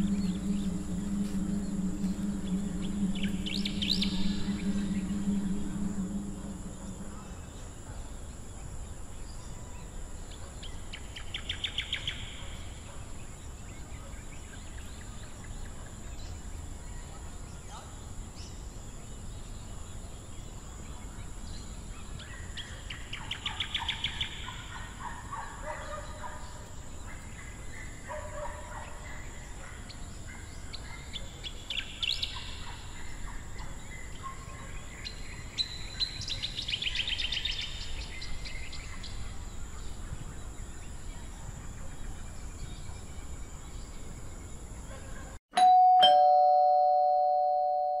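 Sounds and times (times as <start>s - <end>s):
birds chirping: 0.0s - 18.7s
two-note bell chime: 45.6s - 48.0s.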